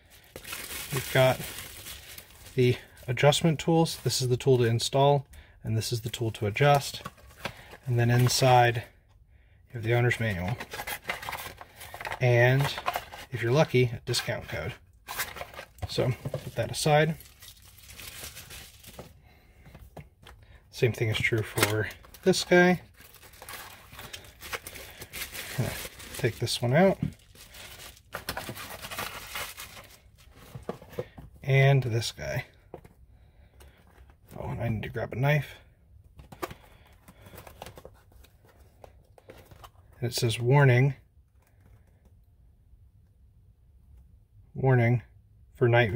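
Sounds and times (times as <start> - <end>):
bubble wrap crinkling: 0.0 - 2.8, 15.1 - 19.0, 21.6 - 30.5
retail box clicking and rustling: 10.5 - 13.3, 15.1 - 16.6.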